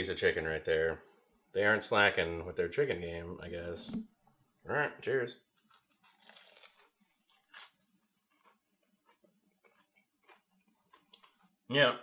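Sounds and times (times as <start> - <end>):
crunch of biting fried food: 5.4 - 11.6.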